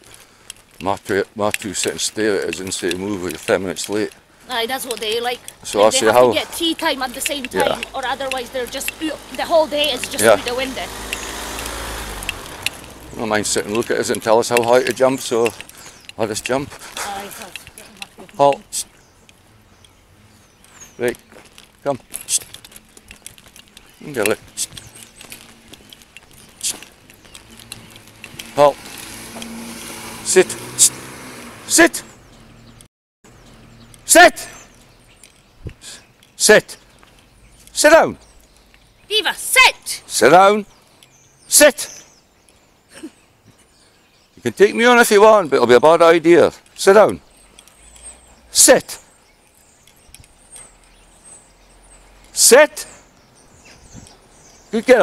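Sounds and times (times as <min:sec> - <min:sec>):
footsteps: 0:00.0 - 0:19.6, 0:20.2 - 0:31.6
dog lead clinking: 0:00.8 - 0:11.3, 0:12.1 - 0:28.8, 0:44.6 - 0:55.0
small clicks: 0:09.8 - 0:16.6, 0:21.4 - 0:29.6, 0:49.5 - 0:51.5.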